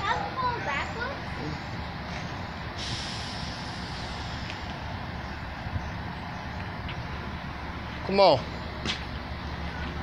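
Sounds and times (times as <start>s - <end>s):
electric train rumbling past: 0.0s - 7.9s.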